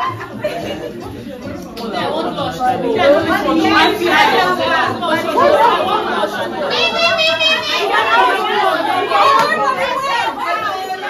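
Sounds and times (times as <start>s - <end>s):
women chattering: 0.0s - 11.0s.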